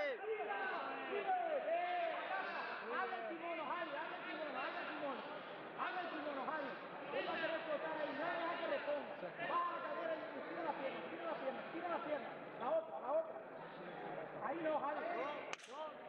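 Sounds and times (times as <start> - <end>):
people talking and calling out: 0.0 - 16.0.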